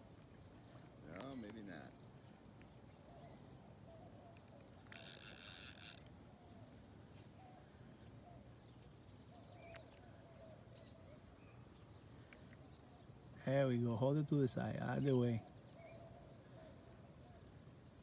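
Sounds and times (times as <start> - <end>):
faint outdoor background: 0.0 - 18.0.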